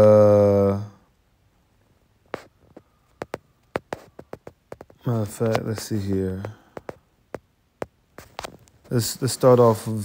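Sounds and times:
fingertips tapping on touchscreen: 2.3 - 8.9.

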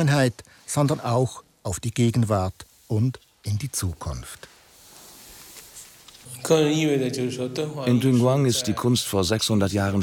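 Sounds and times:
man speaking: 0.0 - 4.6, 6.2 - 10.0.

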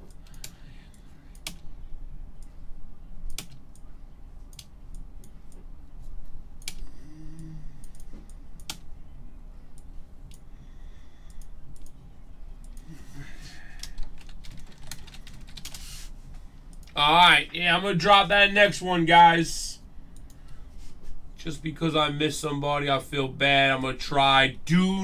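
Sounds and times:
low steady hum: 0.0 - 25.0
keyboard and mouse clicks: 3.2 - 3.8, 6.6 - 6.8, 7.8 - 8.9, 11.3 - 12.0.

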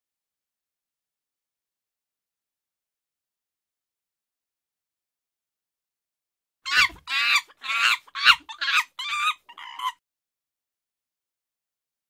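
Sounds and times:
chicken clucking and cackling: 6.7 - 10.0.

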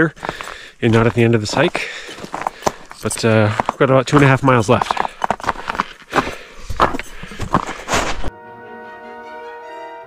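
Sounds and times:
orchestral music: 8.3 - 10.0.

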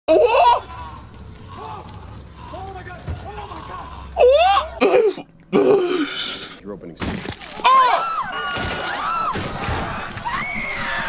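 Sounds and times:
quieter voices: 0.1 - 6.6.

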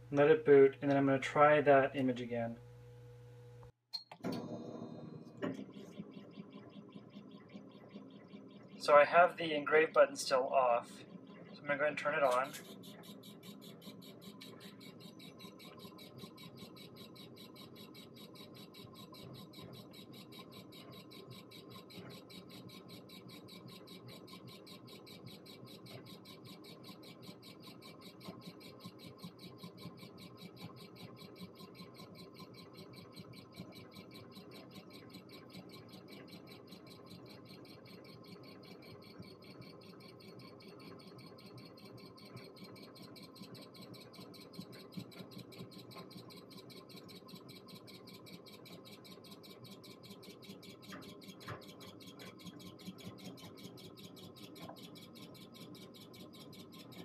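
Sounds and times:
steady low hum: 0.0 - 21.5
thin machine whine: 0.0 - 52.4
stepper motors chirping: 4.9 - 57.0.

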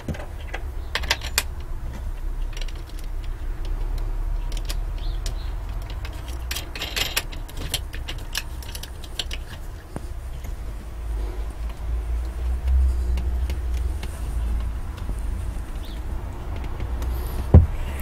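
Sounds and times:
wooden knobs clicking and rattling: 0.0 - 18.0.

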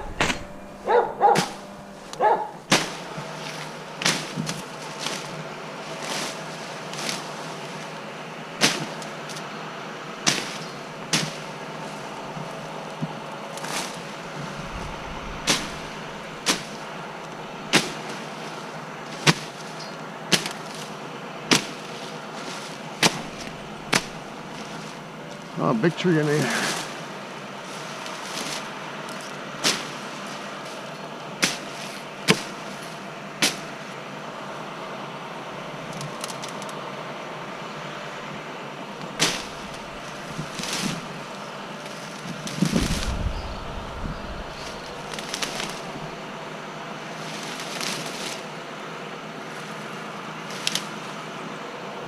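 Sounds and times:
brush snapping and rustling: 0.0 - 8.0, 8.6 - 9.6, 10.2 - 33.9, 35.8 - 36.8, 38.9 - 48.7, 49.5 - 51.2
sharp cracks of branches: 0.0 - 8.0, 8.6 - 33.9, 35.8 - 36.8, 38.9 - 48.7, 49.5 - 51.2
steady low hum: 0.0 - 52.0
dog barking: 0.8 - 1.6, 2.2 - 2.6.

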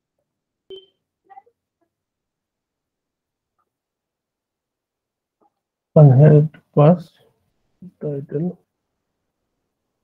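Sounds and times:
short electronic beep: 0.7 - 1.1.

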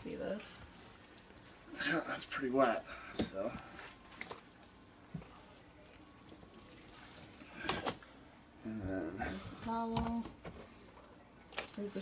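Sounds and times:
water trickling and dripping: 11.2 - 12.0.

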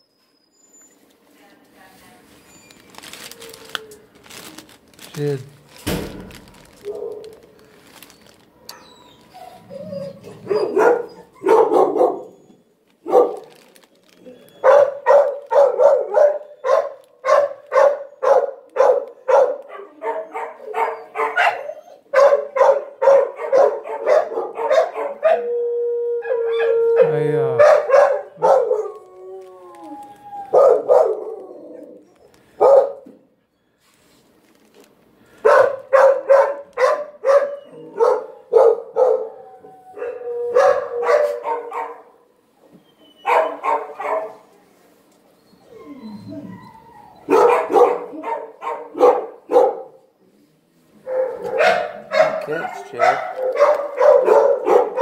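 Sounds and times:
dogs barking: 6.8 - 7.4, 10.0 - 13.6, 14.6 - 25.5, 26.3 - 29.0, 30.5 - 31.5, 32.6 - 33.2, 35.4 - 39.4, 40.0 - 42.2, 43.2 - 44.5, 47.2 - 50.0, 51.0 - 55.0
dog howling: 8.6 - 12.6, 19.8 - 22.1, 23.1 - 32.3, 37.3 - 42.0, 45.6 - 49.0.

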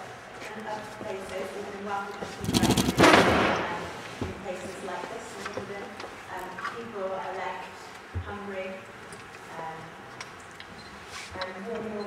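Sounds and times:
loud rustling knock: 2.4 - 3.8.

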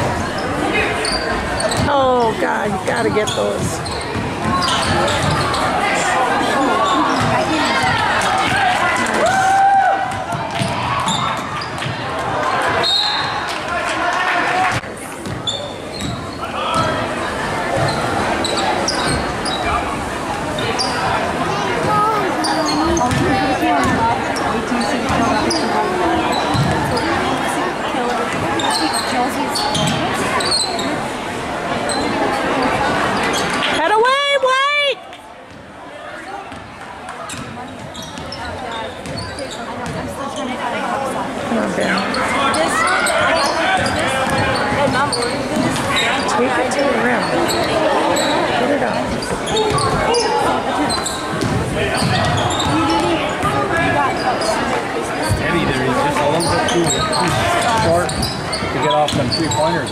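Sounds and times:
crowd chatter: 0.0 - 59.9
sneakers squeaking on hardwood: 0.4 - 2.3, 2.9 - 6.0, 6.8 - 8.7, 10.1 - 12.0, 15.2 - 17.0, 17.7 - 19.8, 21.8 - 27.2, 28.3 - 31.0, 31.9 - 33.8, 36.5 - 40.5, 42.0 - 46.4, 47.0 - 55.4, 56.2 - 59.9
basketball bouncing: 14.7 - 17.0, 22.9 - 24.1, 26.5 - 26.9, 39.8 - 40.1, 43.8 - 45.8, 51.3 - 53.6.

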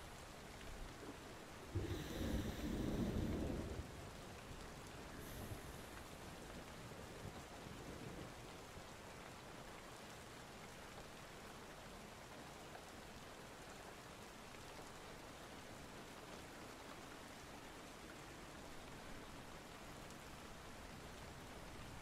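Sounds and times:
steady rain falling: 0.0 - 22.0
low thunder rumble: 1.8 - 4.2.

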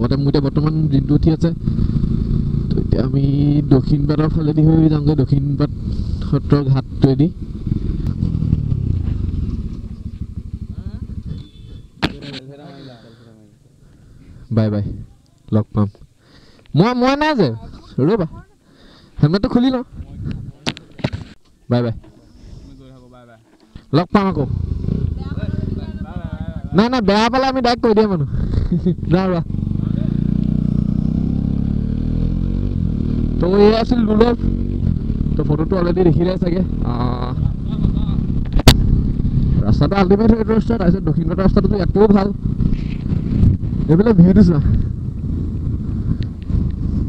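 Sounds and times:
motorcycle engine at low revs: 0.0 - 12.4, 24.3 - 47.0
voices: 9.7 - 16.1, 16.7 - 30.7, 33.3 - 38.4, 39.5 - 42.5.

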